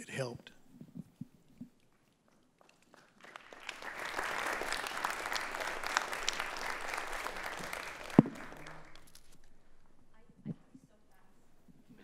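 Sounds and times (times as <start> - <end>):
people applauding: 2.7 - 9.4.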